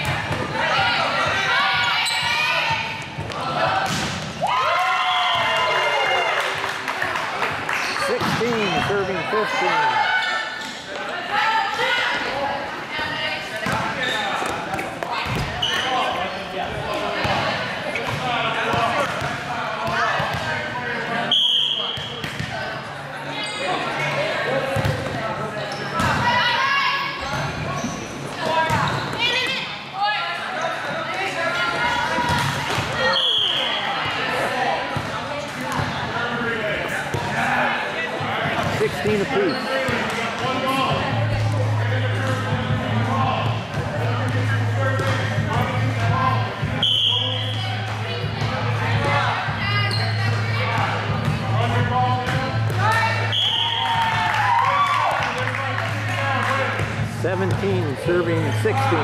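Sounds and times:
voices of players and onlookers: 0:00.0 - 0:59.0
volleyball thumps: 0:08.2 - 0:08.8.

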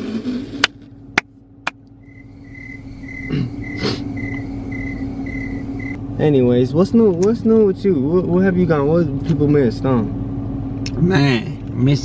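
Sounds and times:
low hum of car running: 0:00.0 - 0:12.0
car warning chime beeping: 0:02.1 - 0:06.0.

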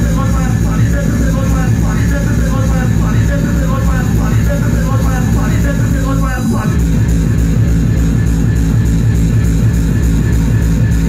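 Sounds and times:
hard techno over club sound system: 0:00.0 - 0:11.0.

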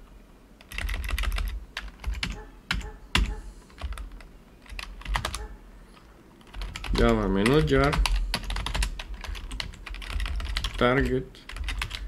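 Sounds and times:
typing on computer keyboard: 0:00.6 - 0:12.0.

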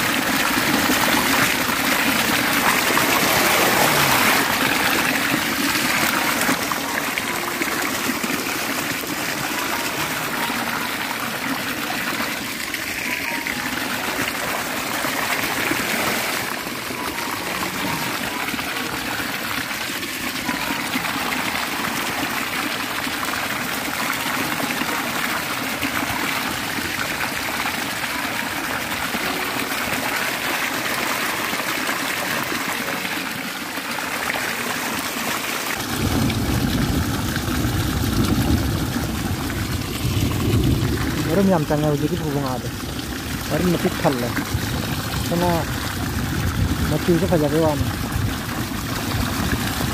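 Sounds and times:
water gushing onto mesh net: 0:00.0 - 0:49.9.

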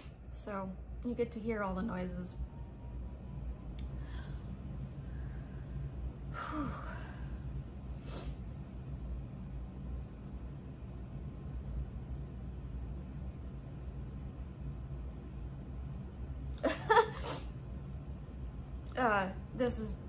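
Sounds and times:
fan humming: 0:00.0 - 0:20.0.

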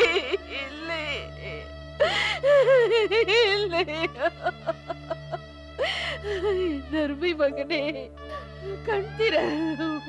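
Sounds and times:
background music: 0:00.0 - 0:10.0
woman sobbing and wailing: 0:00.0 - 0:10.0.

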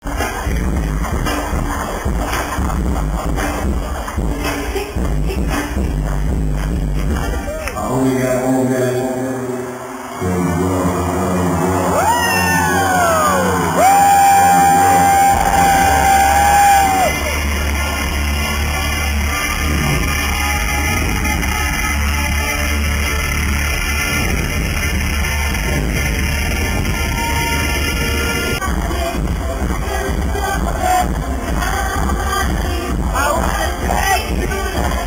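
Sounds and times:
live pop concert music: 0:00.0 - 0:35.0
audience yelling: 0:09.2 - 0:23.4.

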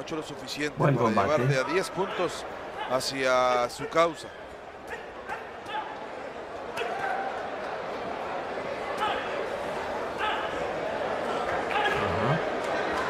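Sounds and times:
crowd murmur: 0:00.0 - 0:03.1, 0:03.8 - 0:13.0
crowd shouts: 0:06.7 - 0:07.6.

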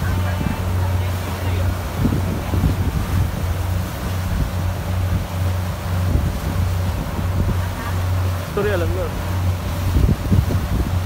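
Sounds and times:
boat engine humming: 0:00.0 - 0:11.0
wind on microphone: 0:00.0 - 0:11.0.

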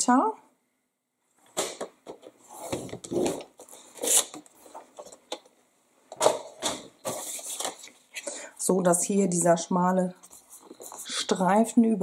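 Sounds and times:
paper folding rustles: 0:06.7 - 0:08.1.

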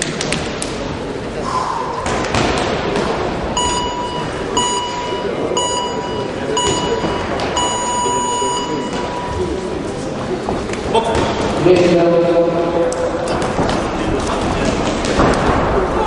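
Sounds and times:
hall chatter: 0:00.0 - 0:16.0
long electronic beep: 0:03.6 - 0:09.6
short electronic beeps: 0:03.6 - 0:09.6.

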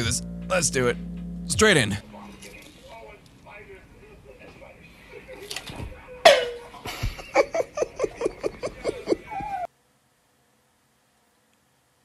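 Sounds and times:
laughter: 0:06.8 - 0:09.7.

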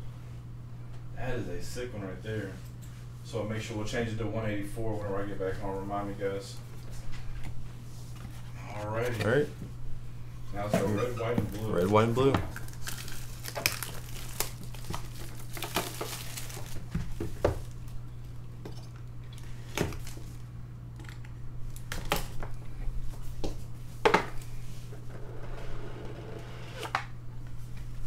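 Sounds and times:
steady low hum: 0:00.0 - 0:28.0
plastic shrink wrap crinkling: 0:11.5 - 0:18.0.

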